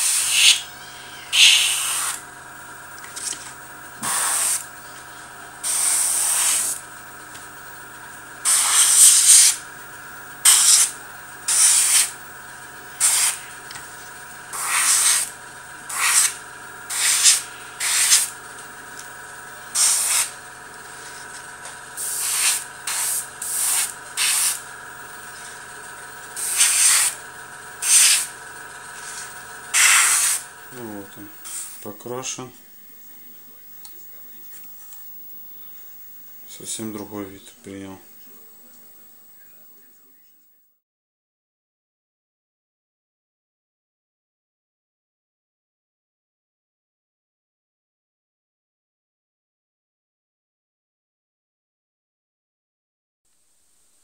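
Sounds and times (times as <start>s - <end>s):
airbrush spraying hiss: 0.0s - 2.2s, 4.0s - 4.8s, 5.6s - 6.8s, 8.4s - 9.6s, 10.4s - 12.1s, 13.0s - 13.6s, 14.5s - 15.3s, 15.9s - 18.4s, 19.7s - 20.4s, 22.0s - 24.7s, 26.3s - 27.2s, 27.8s - 28.3s, 28.9s - 30.5s, 31.4s - 31.8s
compressor humming: 0.0s - 40.2s.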